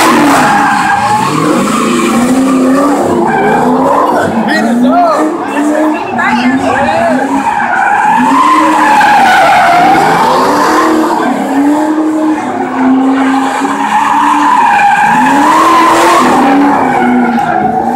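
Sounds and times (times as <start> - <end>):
car engine revving: 0.0 - 17.9
tires screeching: 0.0 - 17.9.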